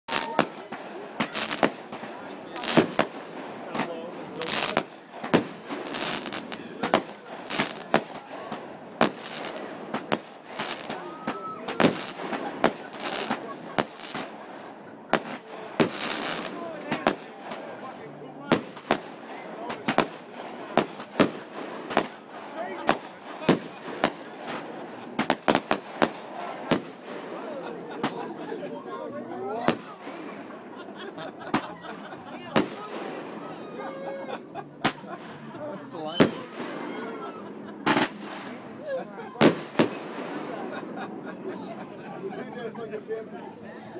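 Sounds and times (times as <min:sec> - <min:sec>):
fireworks bangs: 0:00.1 - 0:28.4, 0:29.6 - 0:30.7, 0:32.5 - 0:33.7, 0:34.8 - 0:41.0.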